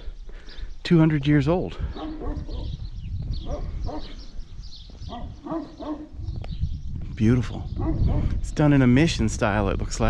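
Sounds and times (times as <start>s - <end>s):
dog barking: 1.9s - 2.8s, 3.4s - 4.2s, 5.1s - 6.2s, 7.8s - 8.4s.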